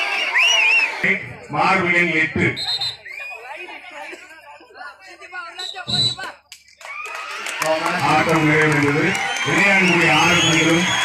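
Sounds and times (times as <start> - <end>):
man talking: 1.0 - 2.6, 7.6 - 11.0.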